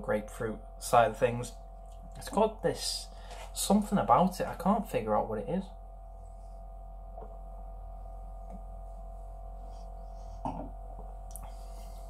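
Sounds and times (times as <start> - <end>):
low electrical hum: 0.0 - 12.0
faint steady tone: 0.1 - 12.0
person gulping beer: 10.4 - 10.7.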